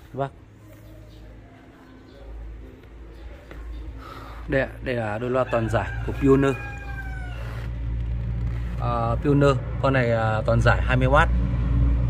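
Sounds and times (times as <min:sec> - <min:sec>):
steady low rumble: 0:02.4 - 0:12.0.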